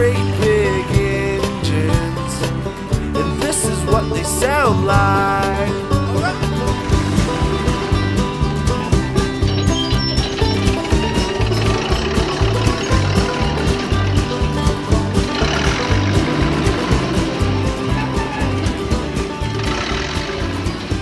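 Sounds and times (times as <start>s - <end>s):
instrumental music with bass line: 0.0s - 21.0s.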